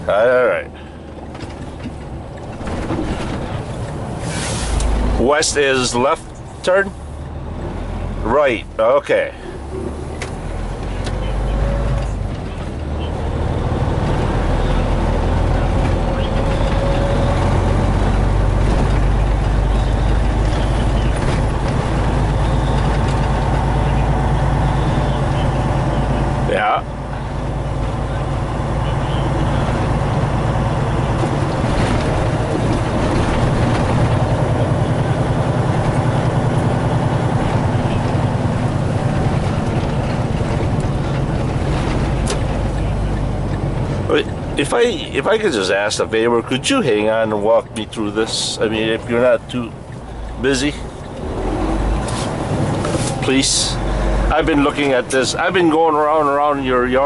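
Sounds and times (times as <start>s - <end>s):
truck diesel engine droning: 0.0s - 57.0s.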